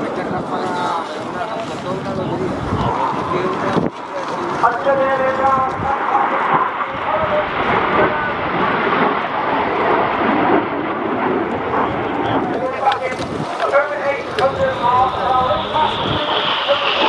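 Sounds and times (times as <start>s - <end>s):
jet roar: 0.0s - 17.0s.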